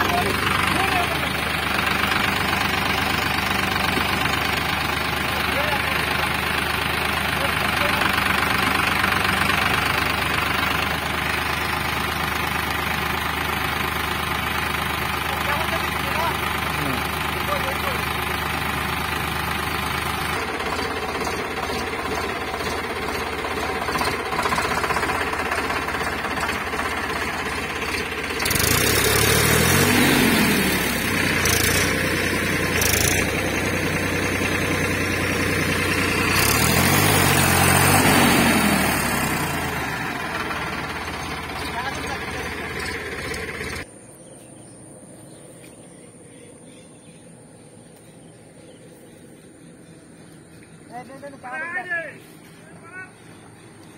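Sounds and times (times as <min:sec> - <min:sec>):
tractor diesel engine revving: 0:00.0 - 0:43.9, 0:48.4 - 0:53.9.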